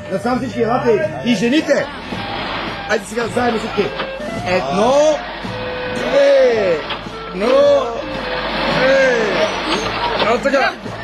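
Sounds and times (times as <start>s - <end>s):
bus engine running: 1.4s - 11.0s.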